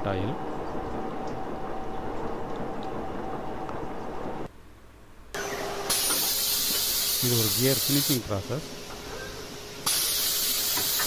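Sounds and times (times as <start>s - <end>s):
loud steady hiss: 5.4s - 11.0s.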